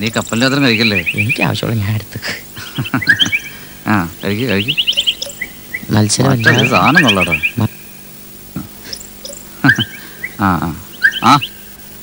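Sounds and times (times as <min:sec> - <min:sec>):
faint bird chirps: 0:00.0 - 0:01.8, 0:02.6 - 0:12.0
men speaking: 0:00.0 - 0:11.5.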